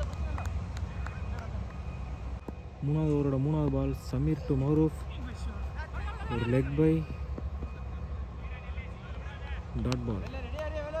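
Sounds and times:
distant voices of players: 0.0s - 11.0s.

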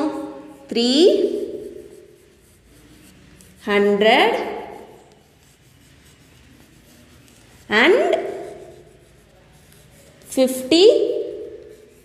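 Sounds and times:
woman speaking: 0.0s - 1.8s, 3.6s - 4.9s, 7.7s - 8.5s, 10.3s - 11.6s
chalk writing on chalkboard: 0.0s - 12.0s.

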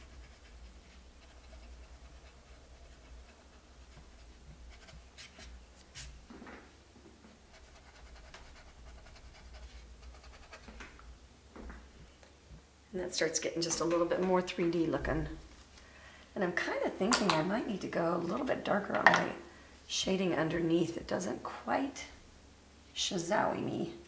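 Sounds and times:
paintbrush scratching: 0.0s - 6.2s, 7.3s - 10.8s.

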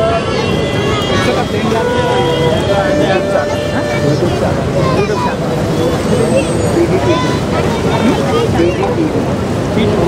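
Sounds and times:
crowd chatter: 0.0s - 10.0s
floodwater rushing through gates: 0.0s - 10.0s.

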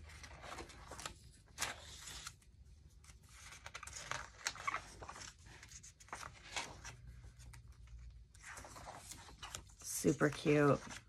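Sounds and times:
book pages turning: 0.0s - 11.0s.

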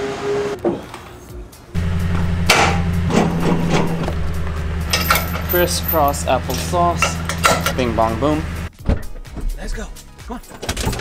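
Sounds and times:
metal hitch knocking and clanking: 1.8s - 8.3s
steady low hum: 1.8s - 8.7s.

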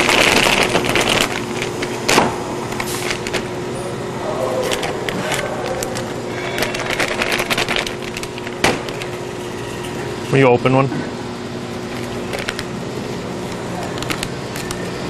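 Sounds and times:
foil pouches crinkling and tapping: 0.0s - 3.5s, 4.6s - 9.3s, 11.9s - 14.9s
packaging machinery hum: 0.0s - 15.0s.

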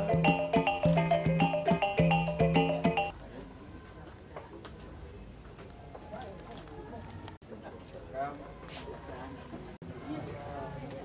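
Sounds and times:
people chattering: 1.7s - 11.0s.

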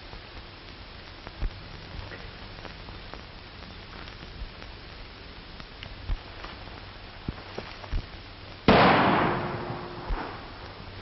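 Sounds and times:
gunshot echo: 8.7s - 10.7s.

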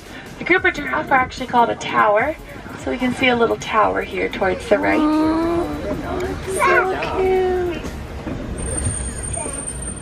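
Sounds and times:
truck engine and road rumble: 0.0s - 10.0s.

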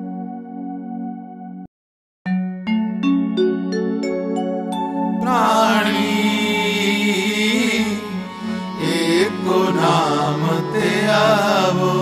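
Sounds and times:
person singing ornamented line: 4.0s - 12.0s
harmonium held tones: 5.2s - 12.0s.

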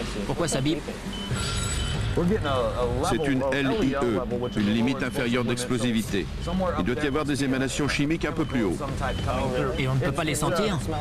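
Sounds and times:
gas detector alarm beeps: 1.1s - 2.1s, 4.1s - 5.5s, 6.4s - 10.7s.

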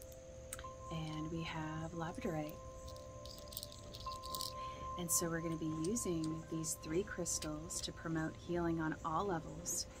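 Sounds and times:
soft music of ringing tones: 0.0s - 10.0s.

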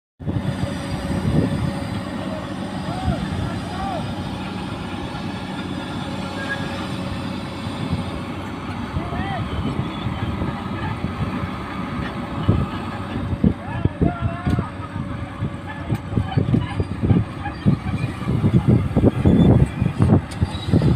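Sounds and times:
excavator diesel engine running: 0.2s - 20.9s.

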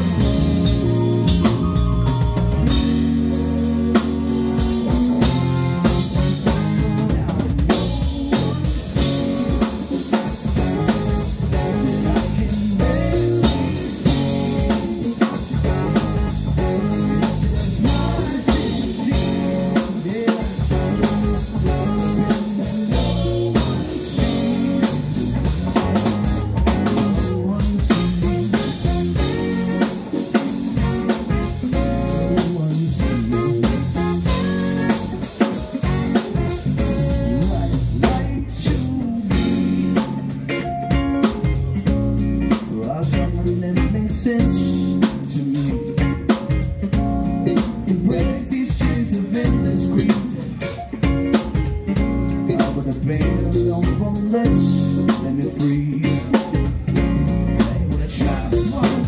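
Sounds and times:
synthesizer keyboard: 0.0s - 6.6s
bass guitar: 0.0s - 59.0s
drum kit: 0.0s - 59.0s
electric guitar: 0.0s - 59.0s
saxophones: 8.2s - 38.1s.

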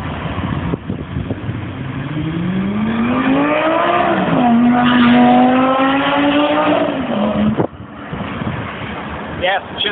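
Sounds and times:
sports car engine accelerating: 0.6s - 9.2s.

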